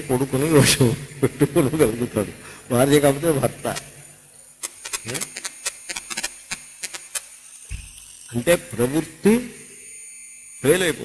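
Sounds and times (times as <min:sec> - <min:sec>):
steady high-pitched whine: 0:00.0 - 0:11.0
small clicks: 0:04.6 - 0:07.3.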